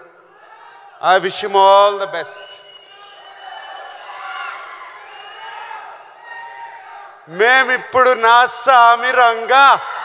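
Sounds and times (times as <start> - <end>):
crowd cheering and shouting: 2.6 - 7.3.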